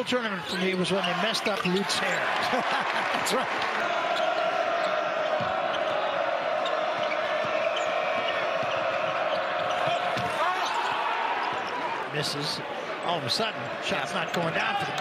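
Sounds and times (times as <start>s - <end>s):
sneakers squeaking on court: 0.4s - 2.4s, 6.6s - 11.9s
crowd din: 1.5s - 15.0s.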